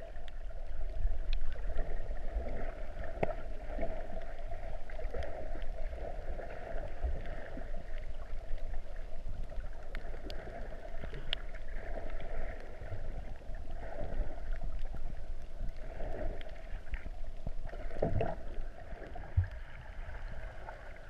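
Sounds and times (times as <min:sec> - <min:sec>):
muffled underwater swishing: 0:00.0 - 0:21.0
faint clicks: 0:00.1 - 0:01.9, 0:03.0 - 0:05.8, 0:06.8 - 0:13.7.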